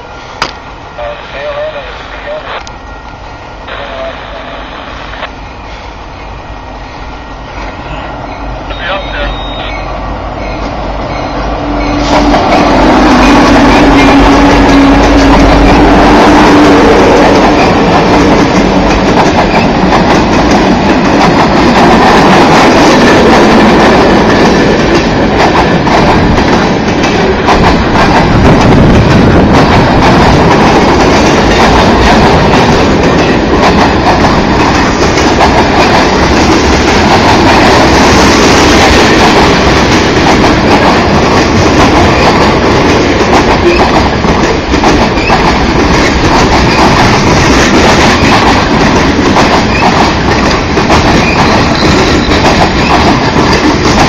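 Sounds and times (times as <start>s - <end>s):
diesel locomotive passing: 0.0s - 54.0s
train wheels rolling on rails: 0.0s - 54.0s.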